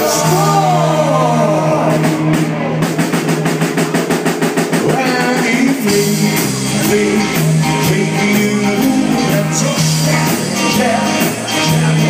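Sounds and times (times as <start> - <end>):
live rock band playing: 0.0 - 12.0
fast drum strokes: 1.8 - 12.0.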